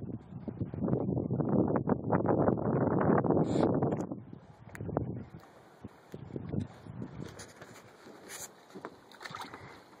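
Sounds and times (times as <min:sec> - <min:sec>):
water splashing in bucket: 0:09.1 - 0:10.0.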